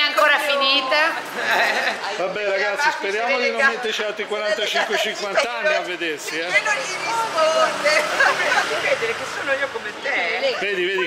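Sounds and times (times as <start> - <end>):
women chattering: 0.0 - 11.0.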